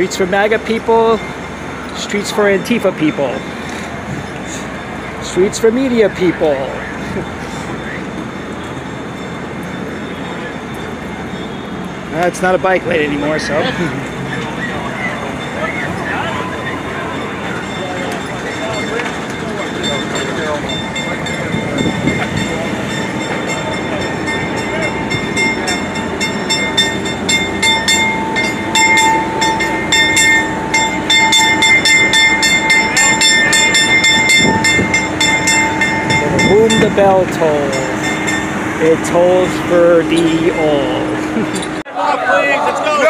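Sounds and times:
generators running: 0:00.0 - 0:43.0.

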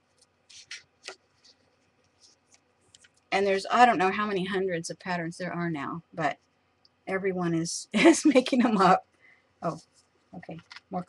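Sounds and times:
paper book handling: 0:00.2 - 0:03.2.

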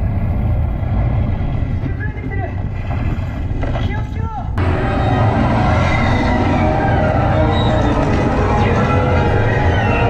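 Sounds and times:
ride low rumble: 0:00.0 - 0:03.8, 0:04.4 - 0:10.0.

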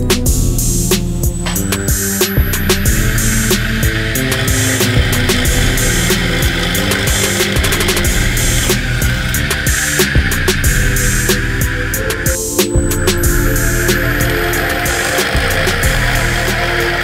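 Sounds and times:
background music: 0:00.0 - 0:17.0
high whine of electric motor: 0:00.4 - 0:17.0.

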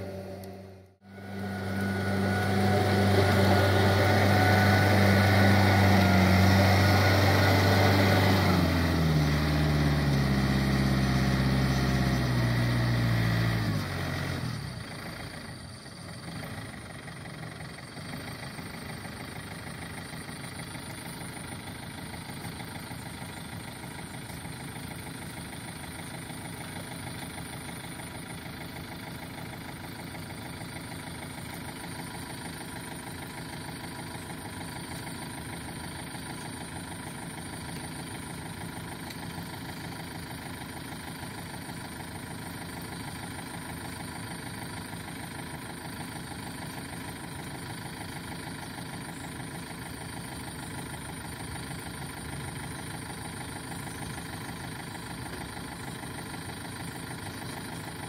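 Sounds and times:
diesel tractor engine running: 0:00.0 - 0:58.0.

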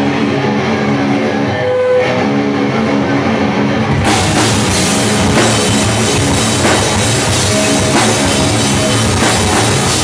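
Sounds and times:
electric guitars ringing chords: 0:00.0 - 0:10.0.

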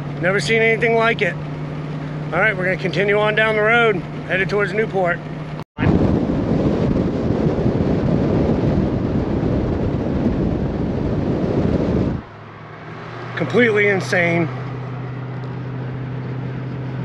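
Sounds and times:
road noise: 0:00.0 - 0:17.0
wind buffeting microphone: 0:05.3 - 0:17.0.

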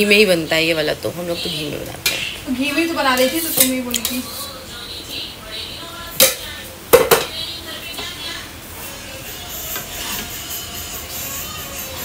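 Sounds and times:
spoon scraping cooking pan: 0:09.6 - 0:10.4.

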